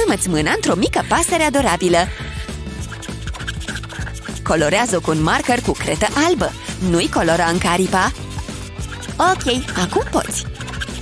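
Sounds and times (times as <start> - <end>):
background music: 0.0 - 11.0
marker scratching on paper: 2.1 - 11.0.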